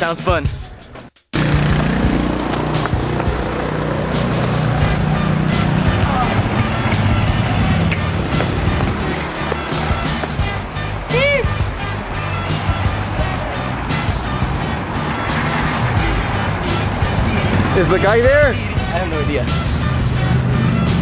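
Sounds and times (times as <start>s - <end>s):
loud rock music: 0.0s - 21.0s.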